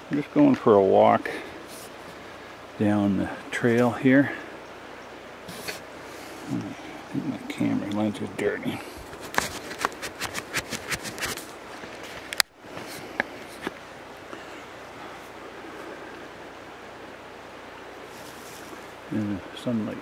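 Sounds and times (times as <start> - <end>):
steady low hiss: 0.0 - 20.0
finger rubbing on camera: 9.0 - 11.5.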